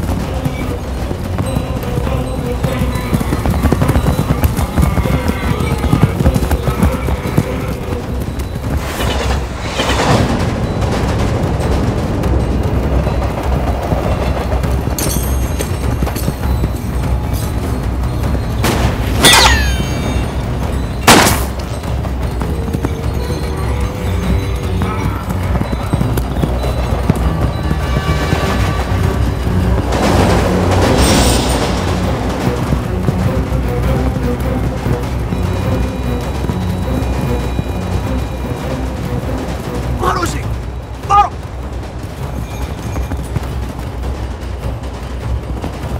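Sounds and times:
camel hoofbeats: 0.0 - 45.9
dramatic orchestral score: 0.0 - 45.9
film music: 0.0 - 45.9
freight train passing: 0.0 - 45.9.

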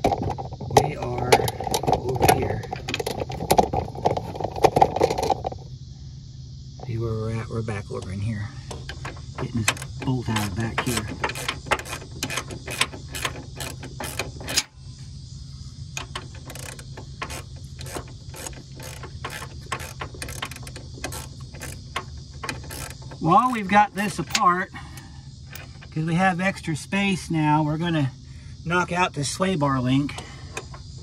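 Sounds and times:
hand ratchet clicking: 8.8 - 14.7, 16.0 - 24.5.

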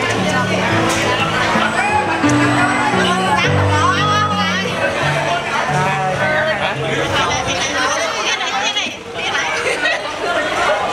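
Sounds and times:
people chattering: 0.0 - 10.9.

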